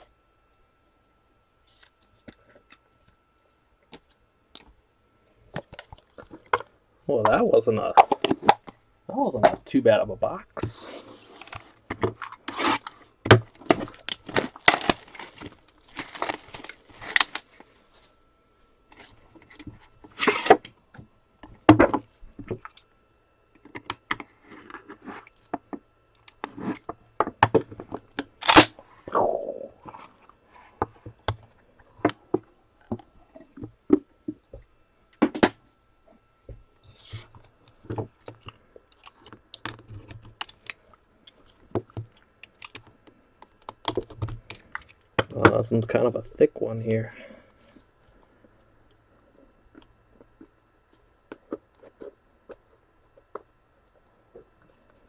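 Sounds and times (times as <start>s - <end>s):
cardboard packaging scraping and tearing: 10.8s - 18.1s.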